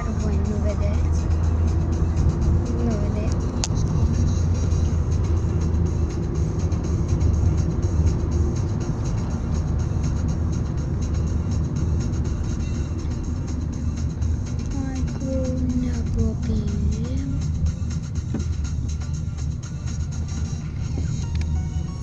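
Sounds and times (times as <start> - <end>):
car cabin road rumble: 0.0 - 22.0
music playing: 0.0 - 22.0.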